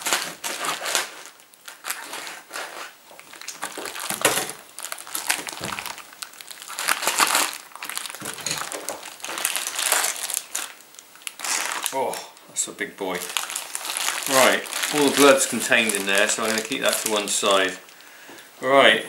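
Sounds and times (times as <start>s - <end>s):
plastic wrapper crinkling: 0.0s - 12.2s, 13.0s - 18.1s.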